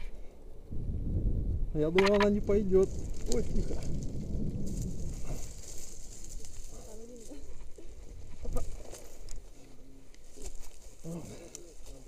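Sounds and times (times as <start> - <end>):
wind rumbling on microphone: 0.0 - 9.5
sharp clicks: 1.9 - 2.4.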